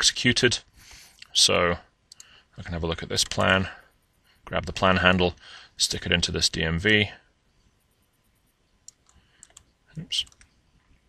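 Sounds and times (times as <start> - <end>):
person speaking: 2.6 - 7.2, 9.9 - 10.5
computer mouse click: 8.4 - 10.5.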